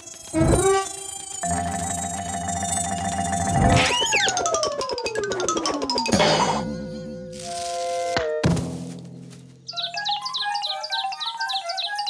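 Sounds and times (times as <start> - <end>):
falling pitch glide: 0.0 - 6.1
held musical notes: 0.0 - 8.4
wobbling boing tone: 1.4 - 7.3.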